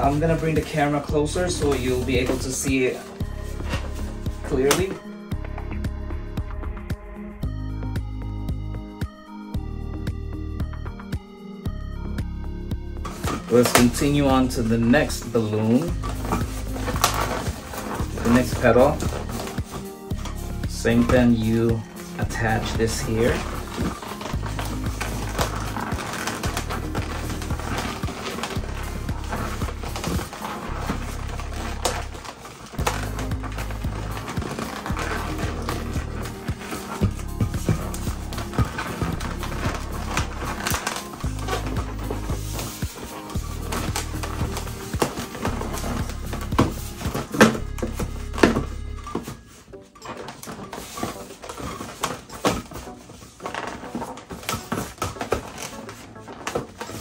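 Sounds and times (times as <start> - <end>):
balloons squeaking being twisted: 0.0 - 5.8, 13.0 - 57.0
music with repeating bass line: 3.2 - 13.3, 32.8 - 49.2.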